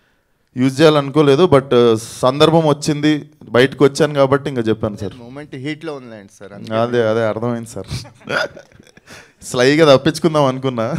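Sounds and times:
man talking into microphone: 0.6 - 8.7, 9.4 - 10.9.

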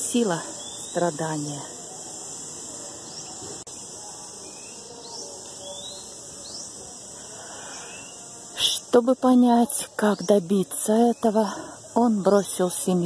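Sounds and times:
insects droning: 0.0 - 13.0.

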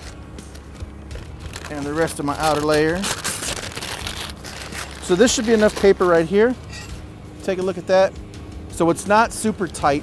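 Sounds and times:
paper bag crinkling: 1.1 - 6.3.

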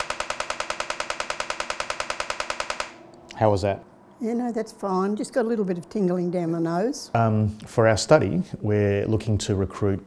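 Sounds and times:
magnetic stimulation coil clicking: 0.0 - 3.3.

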